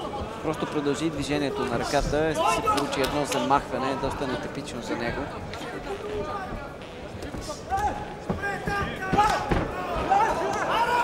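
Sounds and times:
shouting voices: 0:07.5 - 0:11.0.

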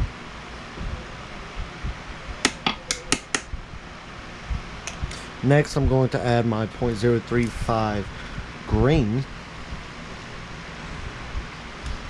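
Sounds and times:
steady fan-like hiss: 0:00.0 - 0:12.0.

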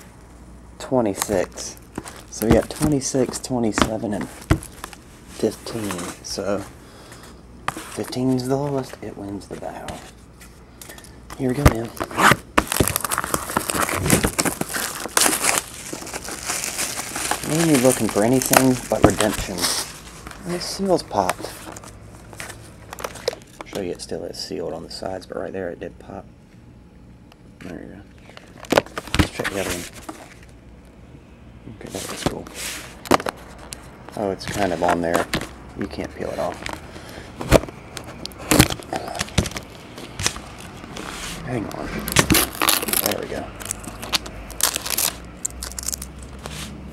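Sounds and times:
plastic shrink wrap crinkling: 0:01.1 - 0:06.4, 0:10.9 - 0:23.7, 0:37.5 - 0:46.8.

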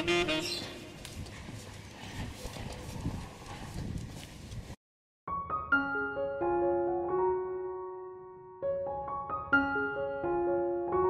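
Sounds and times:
footsteps on brick paving: 0:00.0 - 0:04.8.

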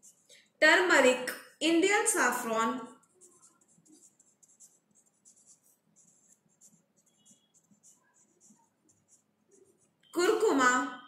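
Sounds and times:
marker pen scratching on paper: 0:00.0 - 0:00.4, 0:01.3 - 0:10.6.

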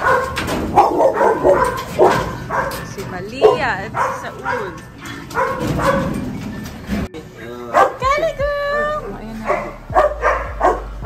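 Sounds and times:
dog whining and yipping: 0:00.0 - 0:06.9.

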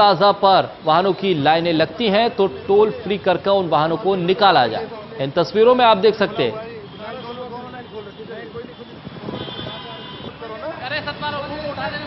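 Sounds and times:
men talking and shouting: 0:00.0 - 0:12.0.

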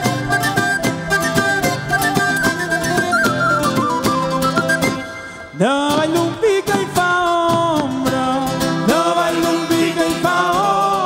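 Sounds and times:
strummed guitars folk music: 0:00.0 - 0:11.0
person singing long notes: 0:05.5 - 0:11.0.

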